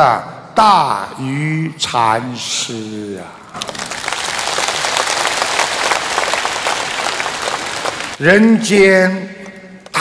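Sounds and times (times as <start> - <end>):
audience applause: 3.6 - 8.2.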